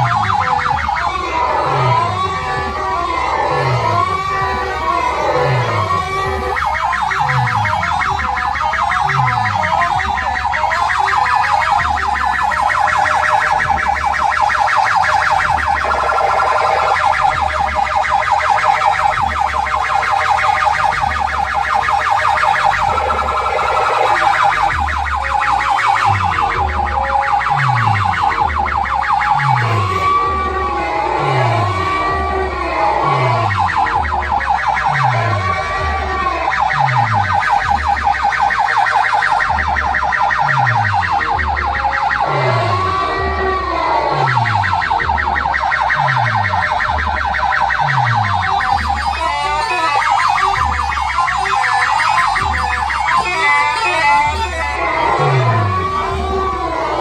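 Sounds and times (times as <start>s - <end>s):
electronic dance music: 0.0s - 57.0s
wavering siren tones: 0.0s - 57.0s.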